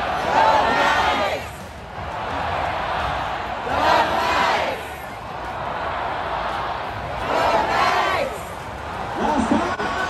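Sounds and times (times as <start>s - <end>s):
stadium crowd shouting: 0.0s - 10.0s.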